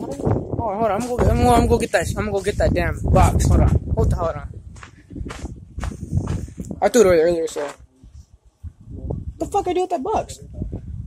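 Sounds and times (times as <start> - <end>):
footsteps: 0.0 - 8.8.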